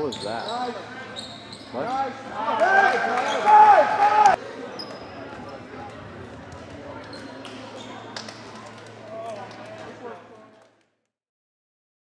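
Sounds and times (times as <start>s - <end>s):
gym hall noise: 0.0s - 10.6s
sneakers squeaking on hardwood: 0.1s - 1.8s.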